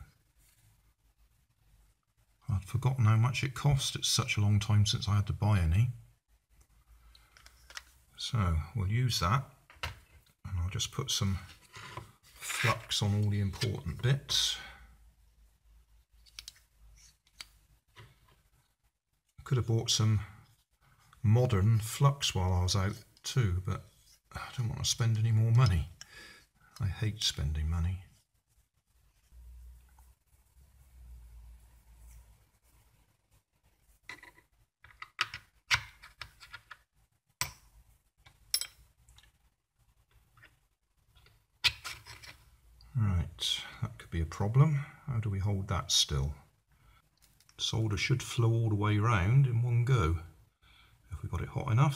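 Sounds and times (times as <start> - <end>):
soft rubbing: 11.2 - 14.2, 27.0 - 34.1.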